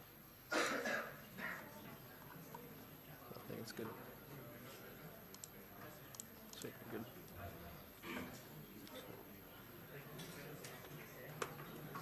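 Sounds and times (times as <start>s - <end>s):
person coughing: 0.5s - 1.6s, 8.0s - 8.4s.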